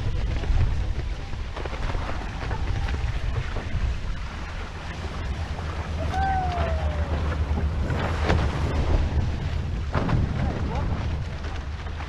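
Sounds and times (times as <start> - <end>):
water rushing past hulls: 0.0 - 12.0
wind buffeting microphone: 0.0 - 12.0.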